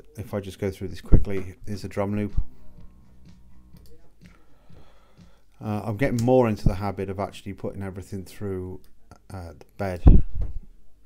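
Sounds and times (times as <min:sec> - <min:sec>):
drum loop: 0:01.2 - 0:06.9.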